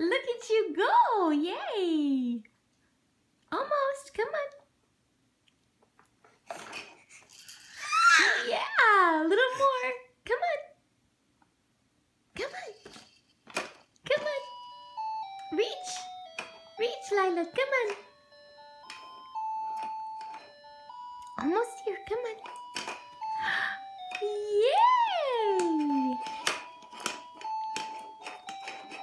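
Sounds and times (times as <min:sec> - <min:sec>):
baby squealing: 0:07.7 - 0:08.5
electronic toy beeped melody: 0:14.2 - 0:29.0.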